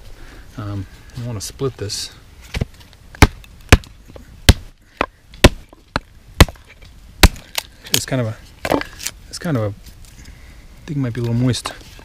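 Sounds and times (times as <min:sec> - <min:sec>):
axe splitting firewood: 0:02.5 - 0:09.2.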